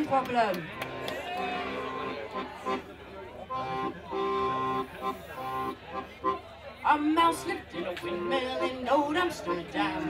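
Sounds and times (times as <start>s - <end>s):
piano accordion chords: 3.5s - 6.4s.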